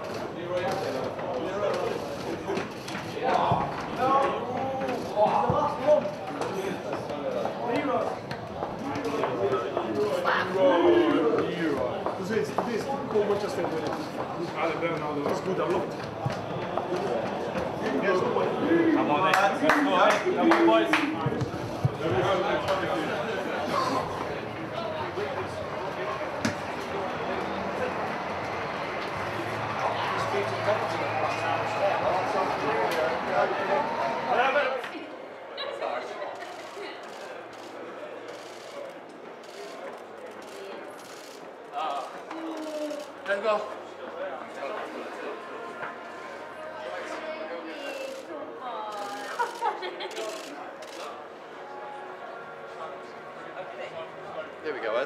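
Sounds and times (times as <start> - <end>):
indistinct voices and chatter: 0.0 - 55.0
people talking and calling out: 0.0 - 55.0.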